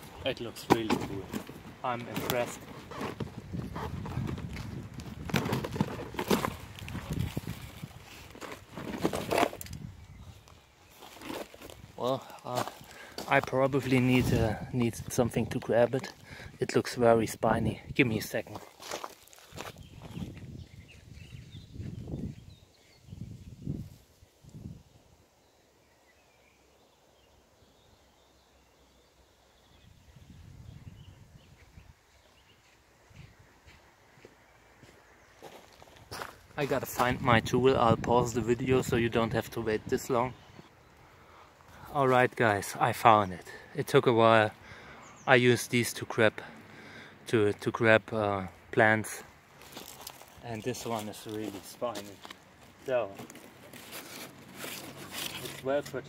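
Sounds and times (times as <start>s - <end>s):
gravel crunching underfoot: 0.0s - 16.4s, 18.2s - 22.6s, 32.1s - 40.4s, 49.1s - 56.0s
cardboard scraping and rustling: 0.6s - 9.7s, 53.1s - 55.7s.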